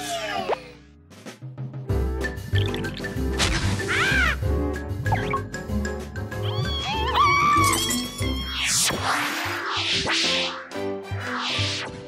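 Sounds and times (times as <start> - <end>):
cartoon music with low beat: 1.0 - 12.0.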